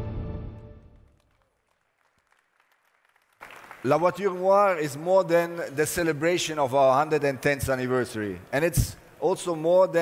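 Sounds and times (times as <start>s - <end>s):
music: 0.0s - 1.1s
audience clapping: 0.8s - 5.0s.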